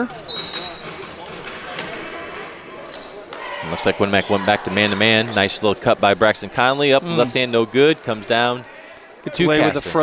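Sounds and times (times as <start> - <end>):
murmur of spectators: 0.0 - 10.0.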